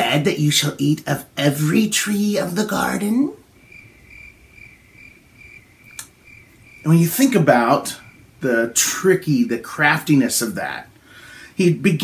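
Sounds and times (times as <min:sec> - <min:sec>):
cricket chirping: 0:03.5 - 0:08.4
sharp click: 0:05.9 - 0:06.2.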